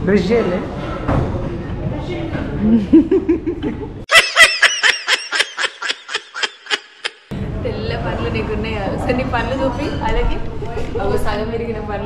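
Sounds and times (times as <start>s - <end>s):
high-pitched giggling laugh: 3.0s - 7.3s.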